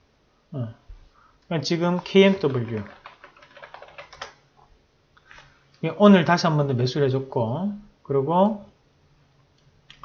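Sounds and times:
computer keyboard typing: 0:01.8 - 0:04.4.

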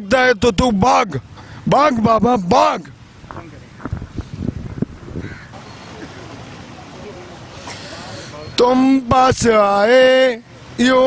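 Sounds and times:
outdoor street hum: 0:00.0 - 0:11.0
short crowd voices: 0:05.5 - 0:08.8.

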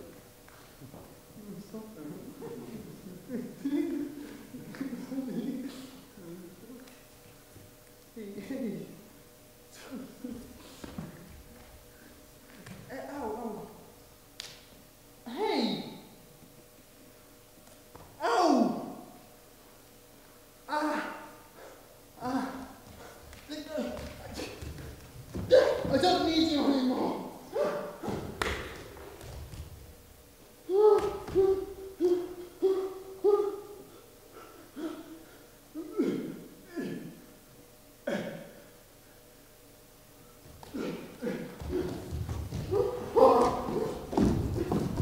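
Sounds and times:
person calling out: 0:15.2 - 0:16.1, 0:18.2 - 0:19.2, 0:20.7 - 0:21.4, 0:22.2 - 0:22.8, 0:25.4 - 0:28.2, 0:30.7 - 0:34.0, 0:40.7 - 0:45.0
person moaning: 0:20.7 - 0:21.4, 0:22.2 - 0:23.1, 0:30.7 - 0:37.2, 0:40.6 - 0:45.0.

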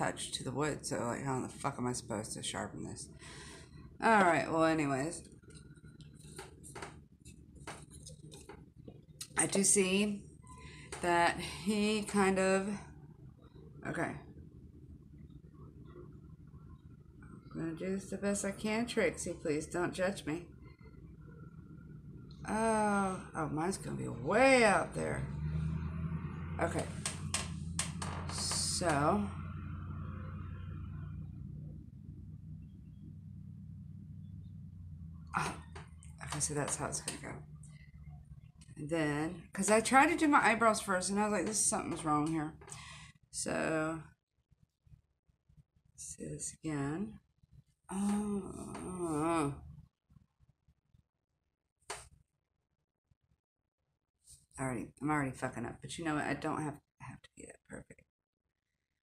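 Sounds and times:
low room hum: 0:00.0 - 0:51.0, 0:54.3 - 0:57.9.

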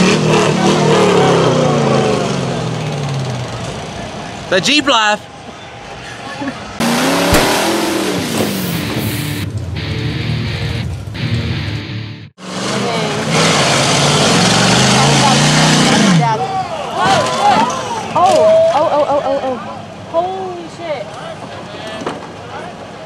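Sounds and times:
engine revving hard: 0:00.0 - 0:03.3, 0:06.8 - 0:09.4, 0:12.4 - 0:16.4
mud spraying: 0:06.8 - 0:09.4
people shouting: 0:16.4 - 0:18.8.

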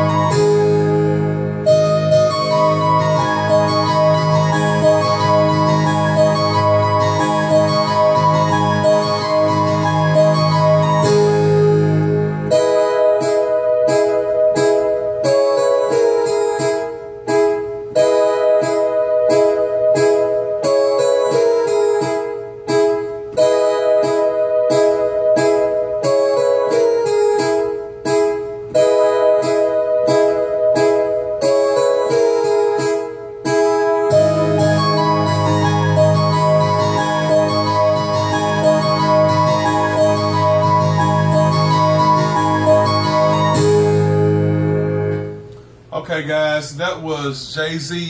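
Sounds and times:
falling melodic line: 0:00.0 - 0:45.6
keyboard playing repeated chords: 0:00.0 - 0:46.6
low bass notes: 0:33.8 - 0:46.0.

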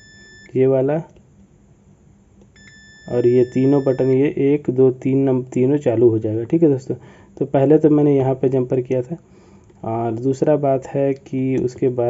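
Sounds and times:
multimeter continuity beep: 0:00.0 - 0:00.6, 0:02.6 - 0:04.2.

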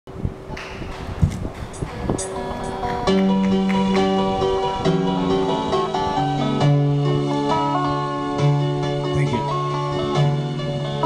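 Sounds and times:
electric guitar chords: 0:01.7 - 0:11.0.

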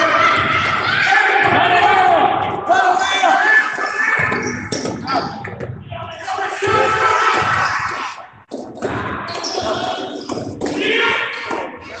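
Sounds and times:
crowd yelling in a gymnasium: 0:00.0 - 0:12.0.

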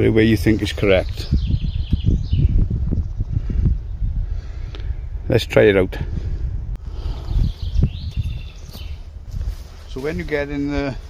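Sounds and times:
wind rumbling on microphone: 0:00.0 - 0:11.0
footsteps on forest floor: 0:08.0 - 0:11.0.

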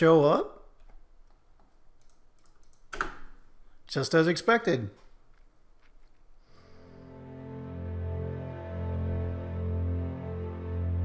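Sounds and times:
person speaking: 0:00.0 - 0:00.7, 0:03.8 - 0:05.2.

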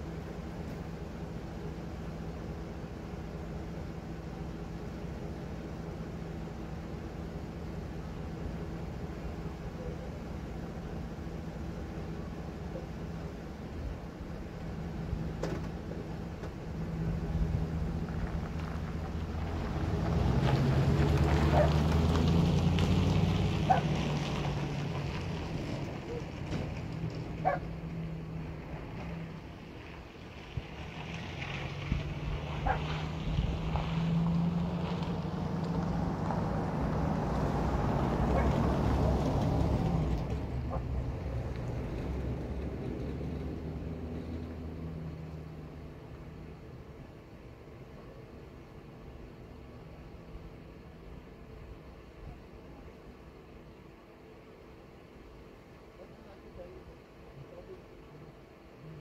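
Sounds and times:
second vehicle engine: 0:00.0 - 0:59.0
pickup truck engine pulling away: 0:14.8 - 0:46.7.

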